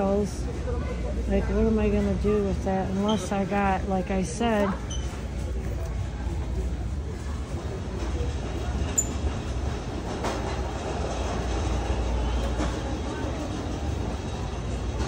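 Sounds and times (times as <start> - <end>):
faint distant voices: 0.0 - 15.0.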